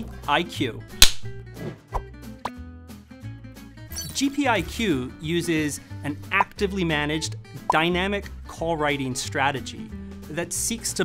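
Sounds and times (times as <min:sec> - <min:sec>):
background music with held tones: 0:00.0 - 0:11.0
clapperboard snapping shut: 0:01.0 - 0:01.2.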